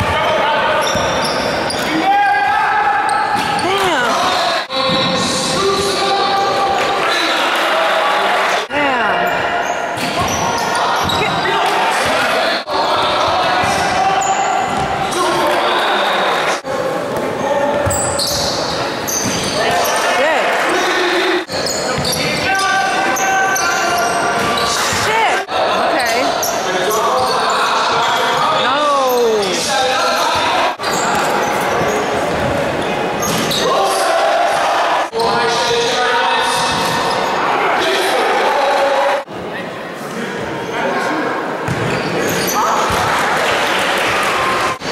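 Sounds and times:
voices calling out: 0.0s - 16.7s.

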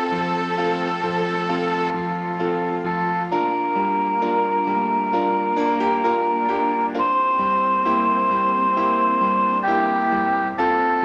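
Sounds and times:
electronic organ playing a ballad: 0.0s - 11.0s.

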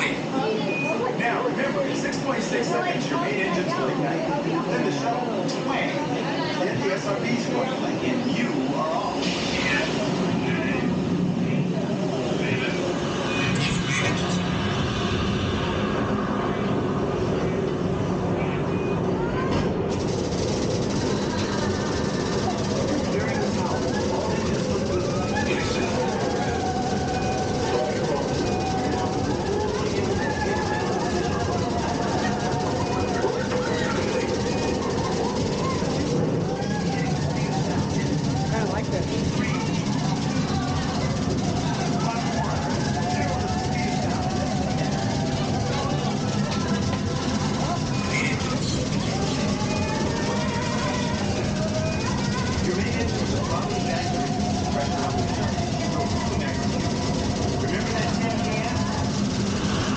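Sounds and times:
indistinct voices: 0.0s - 59.9s
deep rocket engine rumble: 9.0s - 59.9s.

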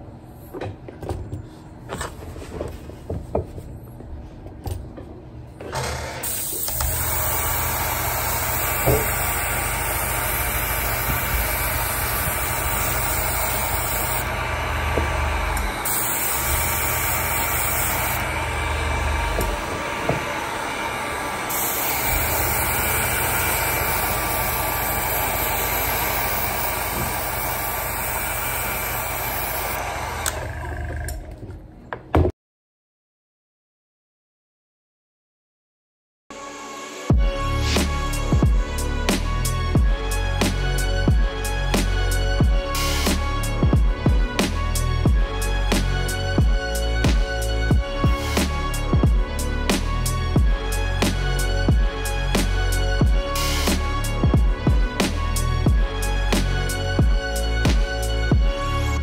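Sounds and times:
heat gun fan blowing: 5.7s - 31.2s.

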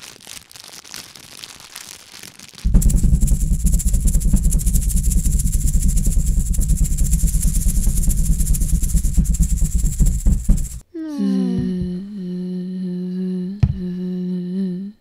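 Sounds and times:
loud mechanical rattle: 2.6s - 10.8s.

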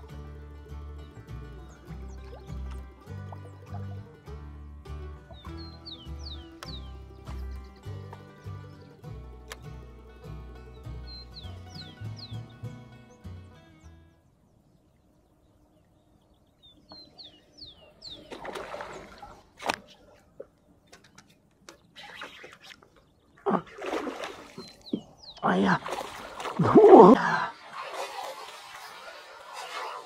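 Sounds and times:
background music: 0.0s - 14.4s
small birds chirping: 1.0s - 4.3s, 5.1s - 27.5s
noises in water: 14.8s - 30.0s
fish splashing: 18.2s - 30.0s.

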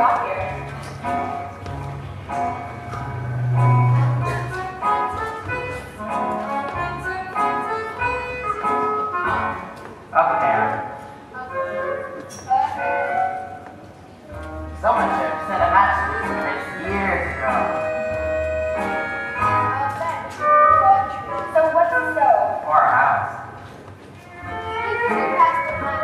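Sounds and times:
keyboard accompaniment: 0.0s - 10.1s, 11.4s - 22.1s, 24.3s - 26.0s.

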